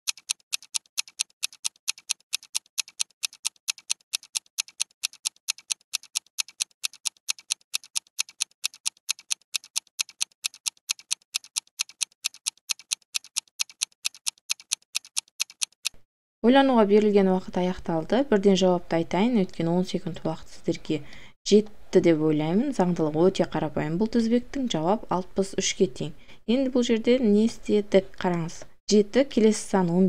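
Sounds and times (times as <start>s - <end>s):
clock ticking: 0.0s - 16.0s.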